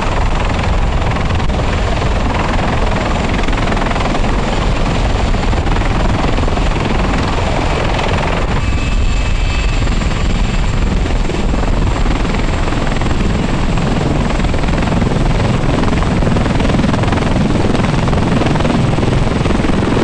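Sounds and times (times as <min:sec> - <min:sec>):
helicopter rotor and engines: 0:00.0 - 0:20.0.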